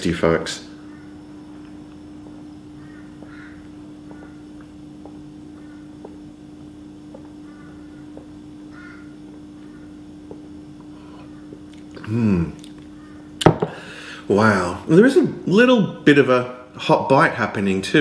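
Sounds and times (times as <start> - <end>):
steady low hum: 0.0 - 18.0
swallowing clicks: 10.2 - 13.0.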